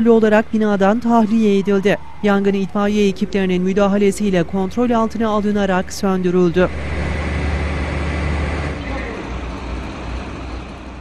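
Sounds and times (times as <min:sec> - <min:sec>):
fire truck engine rumble: 0:00.0 - 0:11.0
street noise: 0:00.0 - 0:11.0.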